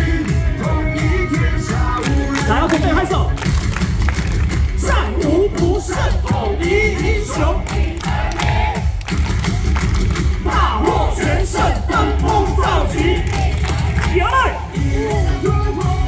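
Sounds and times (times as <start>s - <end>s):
cheer song over loudspeakers: 0.0s - 16.0s
crowd clapping: 1.9s - 5.2s, 7.1s - 10.6s, 11.6s - 14.4s
crowd chanting: 4.8s - 9.0s, 10.4s - 15.2s.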